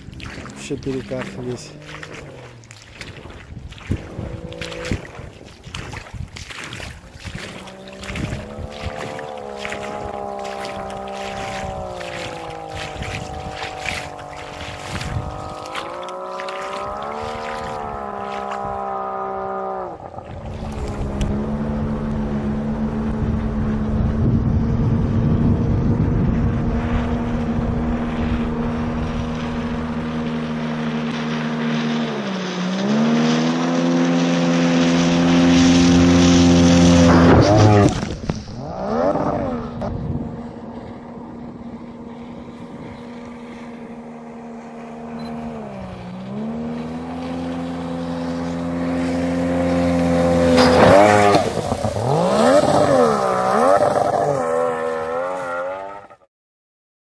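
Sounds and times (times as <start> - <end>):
crackle of quick splashes: 0.0 - 18.9, 46.8 - 55.5
outboard motor running: 0.0 - 56.3.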